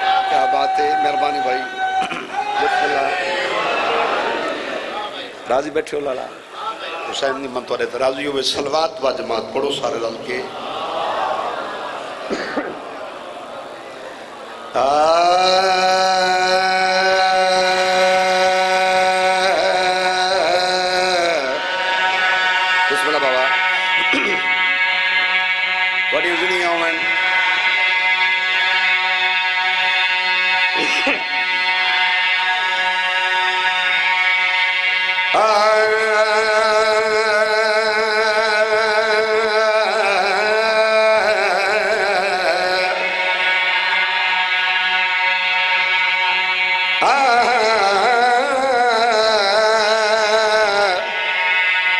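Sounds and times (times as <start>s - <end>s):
person singing recitation with vibrato: 0.0s - 51.9s
man chanting in wavering notes: 14.8s - 45.0s.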